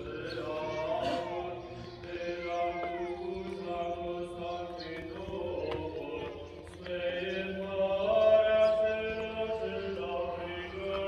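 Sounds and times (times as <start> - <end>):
voices chanting long notes: 0.0 - 11.0.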